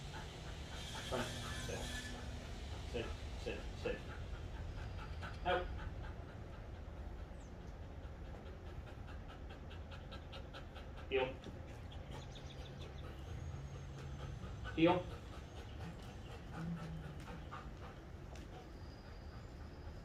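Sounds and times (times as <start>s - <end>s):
dog panting: 0.0s - 20.0s.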